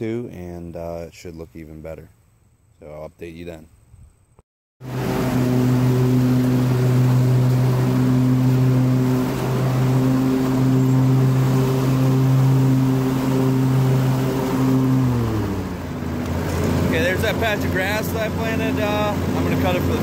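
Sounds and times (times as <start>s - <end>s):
lawn mower engine running: 4.8s - 20.0s.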